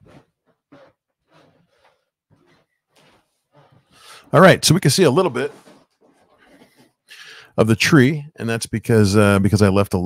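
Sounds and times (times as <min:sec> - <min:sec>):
rustling: 0:00.0 - 0:07.1.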